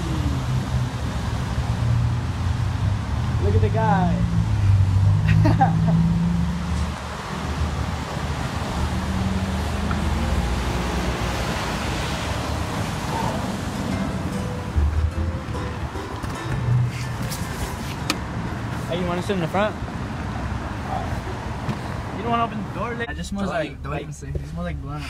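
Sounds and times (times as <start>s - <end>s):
passing cars: 0.0s - 25.0s
tyres hissing on wet street: 4.3s - 14.2s.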